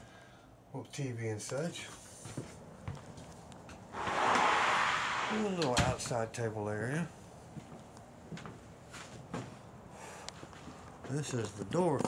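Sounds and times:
steady rushing noise: 3.9s - 6.0s.

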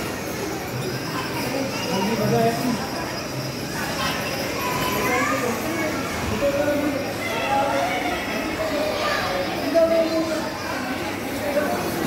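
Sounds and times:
children chattering: 0.0s - 12.0s
indistinct voices: 0.0s - 12.0s.

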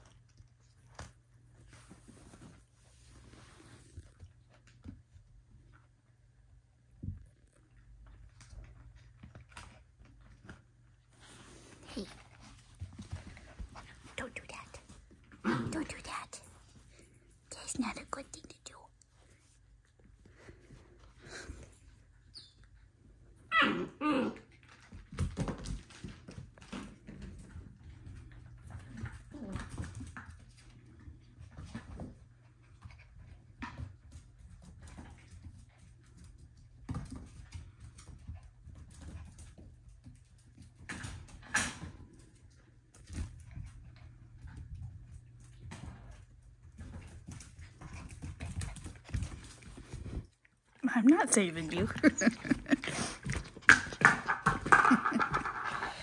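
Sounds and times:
puppies scuffling: 0.0s - 17.5s, 24.4s - 56.0s
puppy whining: 22.2s - 24.8s
paw taps and claw clicks on tile: 52.5s - 56.0s.

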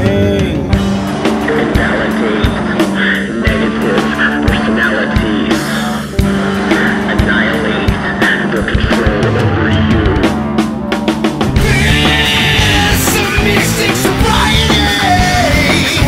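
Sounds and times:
drum kit playing a steady beat: 0.0s - 16.0s
electric guitar: 0.0s - 16.0s.

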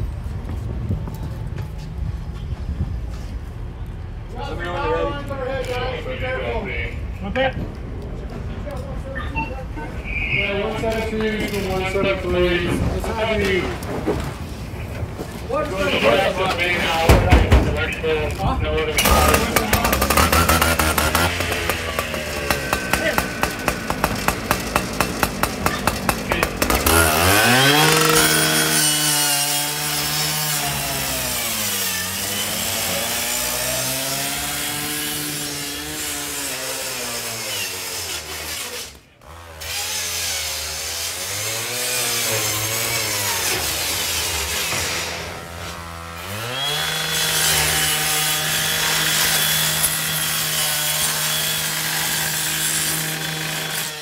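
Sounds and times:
two-stroke power saw cutting: 18.9s - 54.0s.

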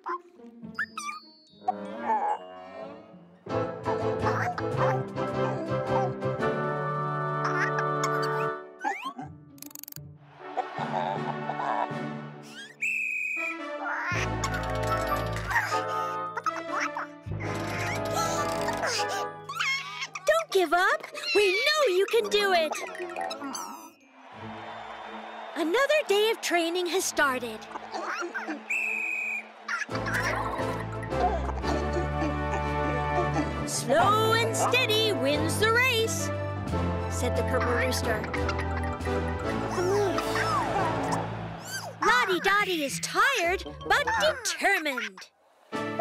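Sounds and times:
cartoon background music: 0.0s - 29.0s, 29.7s - 46.0s
high whistle-like tone: 12.8s - 13.6s, 28.7s - 29.5s
children's music with bass line: 30.0s - 41.2s, 42.0s - 44.7s
cartoon chicken voice: 42.0s - 45.3s.

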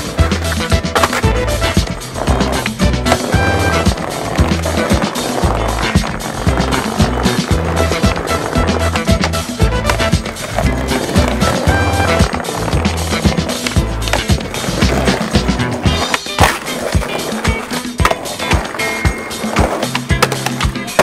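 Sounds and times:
music with steady bass line: 0.0s - 21.0s
skateboard clacks: 0.0s - 21.0s
skateboard wheels rolling on asphalt: 0.0s - 21.0s.

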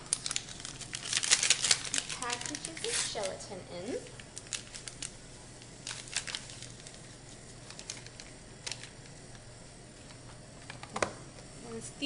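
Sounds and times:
paper pouch crinkling: 0.0s - 9.5s
faint steady hum: 0.0s - 12.0s.

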